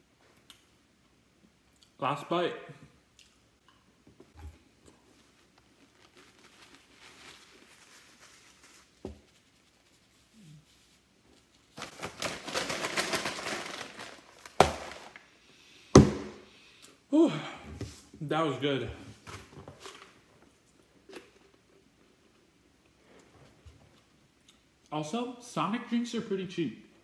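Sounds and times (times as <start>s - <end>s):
paper napkin rustling: 5.0s - 15.2s.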